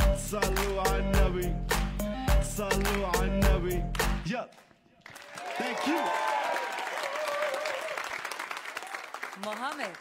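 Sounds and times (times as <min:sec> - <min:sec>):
audience applauding and cheering: 0:05.0 - 0:10.0.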